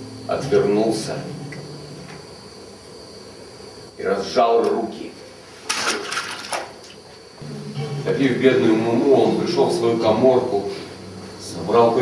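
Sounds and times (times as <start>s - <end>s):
low hiss: 0.0s - 6.1s, 6.7s - 12.0s
faint high-pitched whine: 0.0s - 6.6s, 7.3s - 12.0s.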